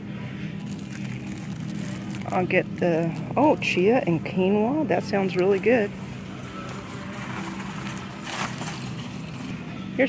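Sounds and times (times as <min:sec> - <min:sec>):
low hum: 0:00.0 - 0:10.0
plastic bag rustling: 0:00.6 - 0:04.2, 0:05.2 - 0:09.6.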